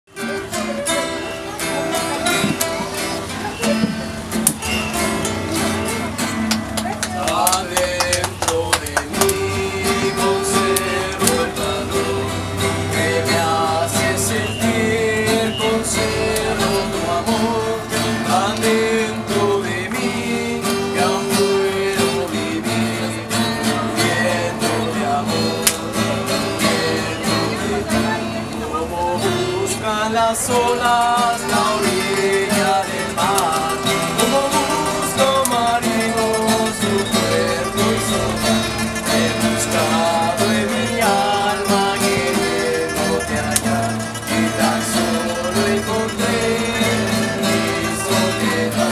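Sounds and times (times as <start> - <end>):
acoustic guitars playing: 0.0 - 48.9
people's voices: 0.0 - 48.9.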